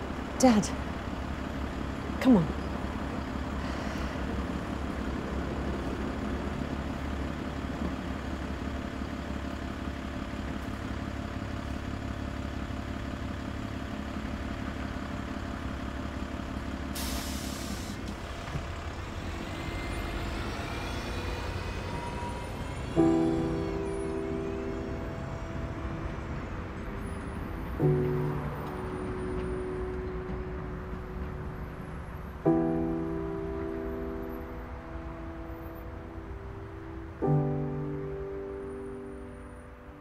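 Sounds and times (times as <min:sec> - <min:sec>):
bus engine rumble: 0:00.0 - 0:40.0
air brake hiss: 0:17.0 - 0:18.0.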